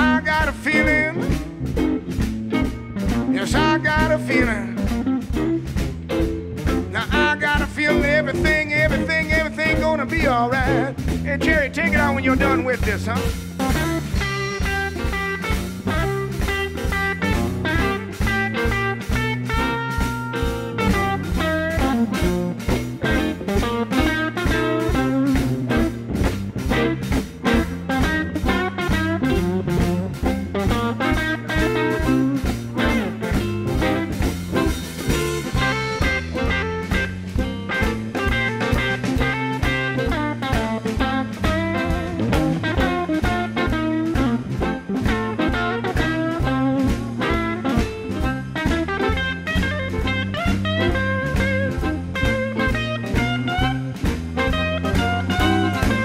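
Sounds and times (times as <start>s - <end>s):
bass: 0.0s - 56.0s
drums: 0.0s - 56.0s
electric guitar: 0.0s - 56.0s.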